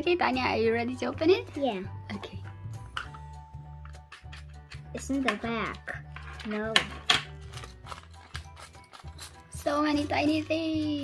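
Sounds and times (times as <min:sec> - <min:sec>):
quiet background music: 0:00.0 - 0:11.0
plastic bag crinkling: 0:07.3 - 0:11.0.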